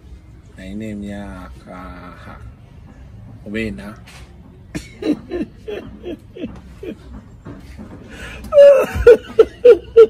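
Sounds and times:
man laughing heartily: 0:04.8 - 0:07.1, 0:08.6 - 0:10.0.

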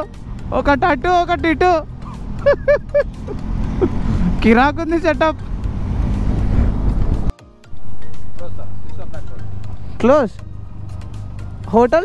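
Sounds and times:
motorcycle engine and wind rumble: 0:00.0 - 0:12.0.

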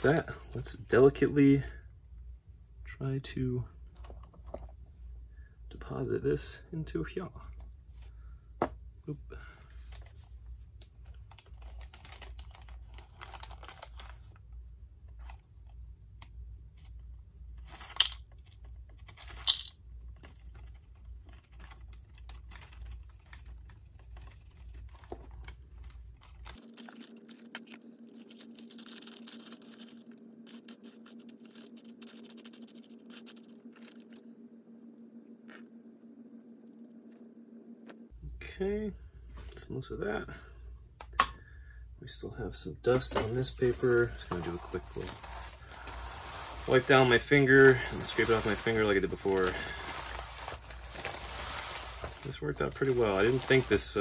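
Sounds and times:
wax paper crinkling: 0:00.0 - 0:00.7, 0:10.8 - 0:14.4, 0:17.6 - 0:34.2, 0:43.0 - 0:54.0
low steady hum: 0:00.0 - 0:54.0
sharp paper crackles: 0:11.1 - 0:14.4, 0:20.2 - 0:34.2, 0:43.2 - 0:54.0.

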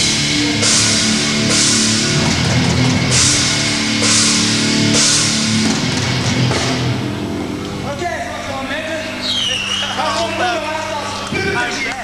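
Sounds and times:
metal band chord and cymbal crash: 0:00.0 - 0:09.2
amplifier hum: 0:00.0 - 0:12.0.

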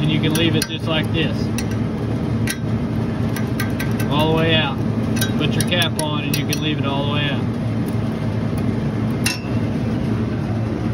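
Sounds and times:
refrigeration compressor humming: 0:00.0 - 0:10.9
sharp metallic clink: 0:09.2 - 0:09.6.

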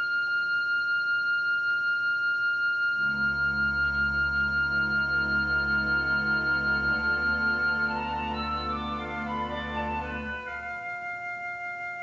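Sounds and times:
organ holding a high note: 0:03.0 - 0:10.9.

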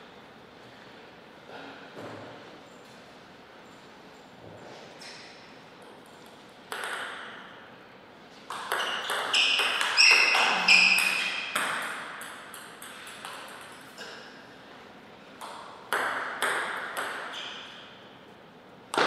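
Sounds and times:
ball bouncing: 0:06.0 - 0:07.5, 0:08.4 - 0:14.2, 0:15.4 - 0:17.8.

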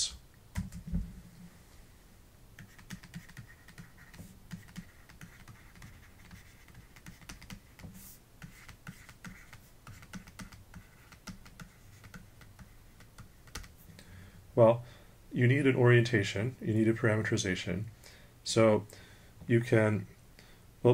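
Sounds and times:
stylus tapping and scratching on tablet: 0:00.6 - 0:00.9, 0:02.6 - 0:13.9.

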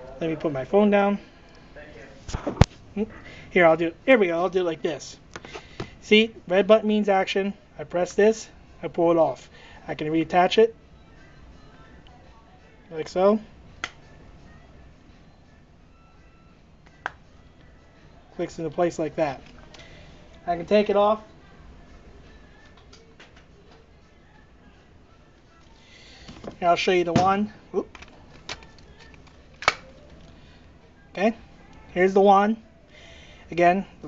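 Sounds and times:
faint background music: 0:00.0 - 0:34.0.

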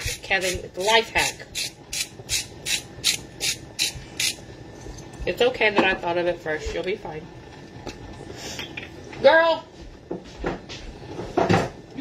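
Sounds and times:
spice grinder rasping: 0:00.0 - 0:04.4.

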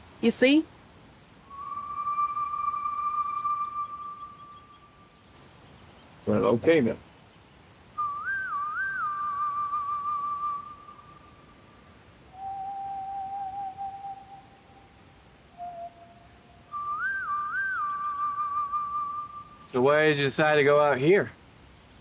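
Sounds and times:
whistled melody: 0:01.5 - 0:04.9, 0:08.0 - 0:11.3, 0:12.4 - 0:14.6, 0:15.6 - 0:19.7.

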